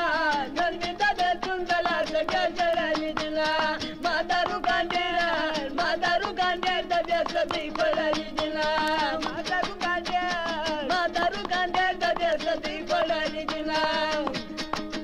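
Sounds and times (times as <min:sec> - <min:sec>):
folk music melody: 0:00.0 - 0:15.0.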